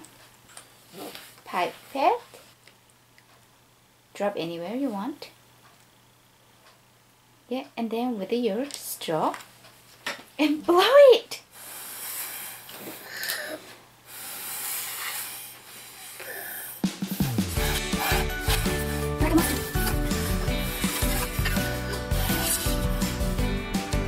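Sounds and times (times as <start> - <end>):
air blown through straws: 11.6 - 13.2, 14.1 - 23.4
background music: 16.8 - 24.0.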